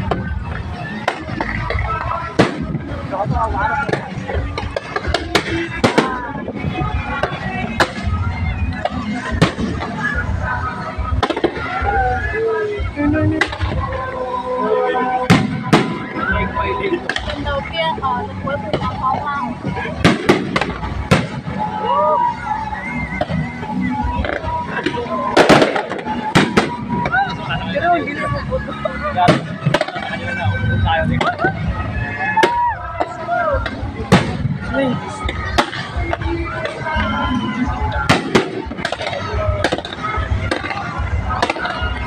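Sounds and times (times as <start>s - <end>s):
fireworks bangs: 0.0s - 12.2s, 15.3s - 17.7s, 19.9s - 22.6s, 23.2s - 27.6s, 29.2s - 30.4s, 32.4s - 42.0s
background voices: 0.0s - 21.6s
background music: 0.0s - 42.0s.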